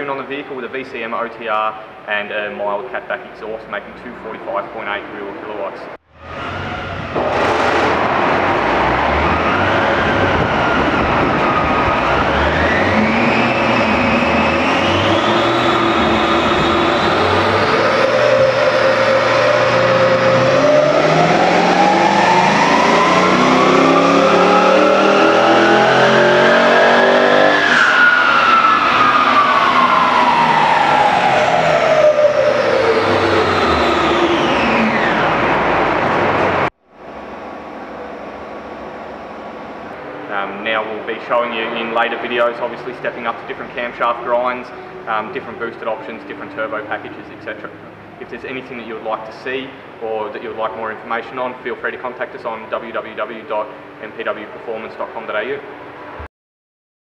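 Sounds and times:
car engine revving on dyno: 0:06.1 - 0:48.8.

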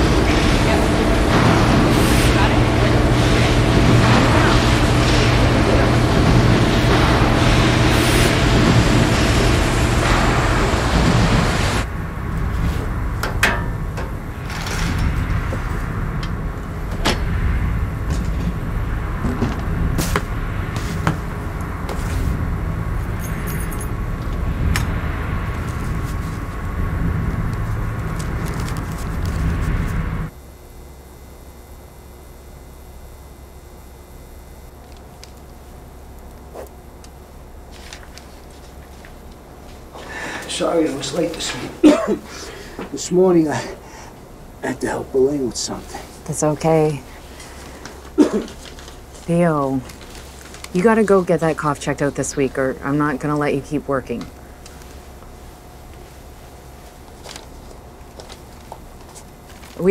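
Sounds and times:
machinery humming: 0:00.0 - 0:59.9.

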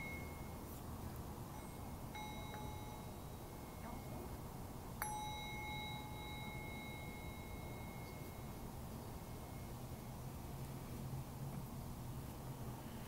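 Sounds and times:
meditation bell ringing: 0:00.0 - 0:00.8, 0:01.4 - 0:10.5.

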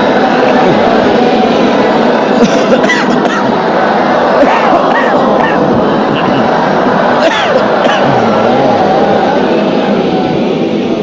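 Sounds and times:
many voices chanting together: 0:00.0 - 0:11.0.

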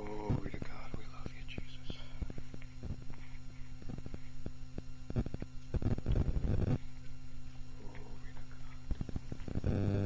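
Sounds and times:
person whispering: 0:00.0 - 0:02.3, 0:07.7 - 0:08.9
mains hum: 0:00.0 - 0:10.0.

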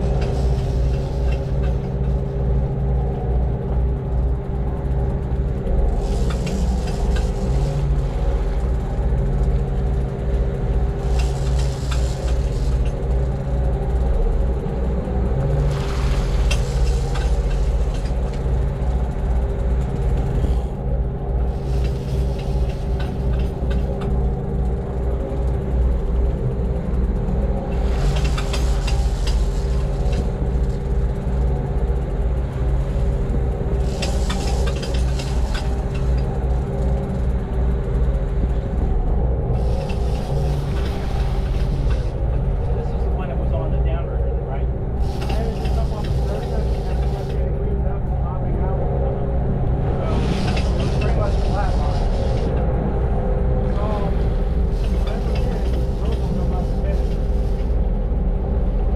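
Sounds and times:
boat engines rumbling: 0:00.0 - 0:58.9
steady hum: 0:00.0 - 0:58.9
rushing hiss: 0:33.8 - 0:35.9, 0:45.0 - 0:47.3.

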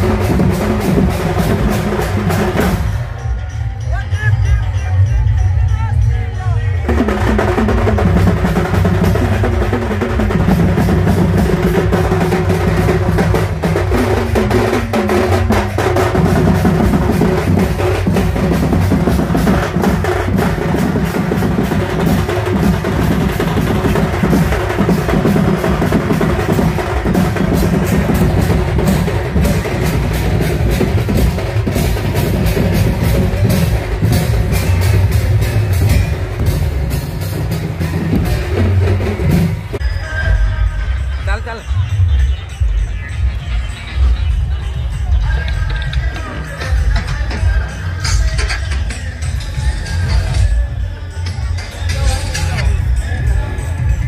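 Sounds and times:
barrel drums beaten: 0:00.0 - 0:03.5, 0:06.8 - 0:39.8.

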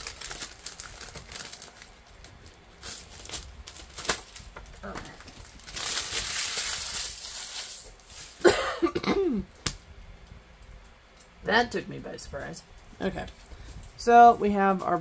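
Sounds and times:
paper and plastic rustling: 0:00.0 - 0:08.5.

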